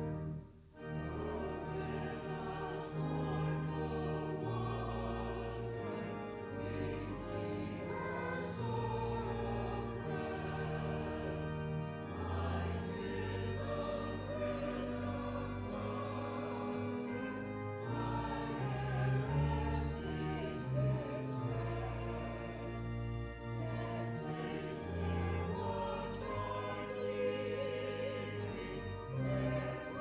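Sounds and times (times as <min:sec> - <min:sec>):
choir singing: 0:00.8 - 0:30.0.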